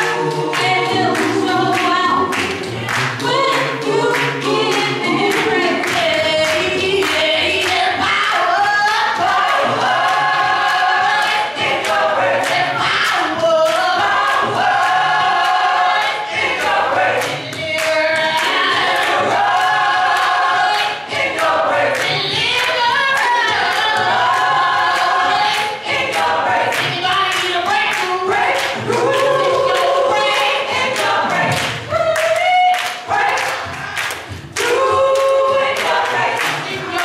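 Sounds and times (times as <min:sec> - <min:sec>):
women singing a cappella gospel: 0:00.0 - 0:37.0.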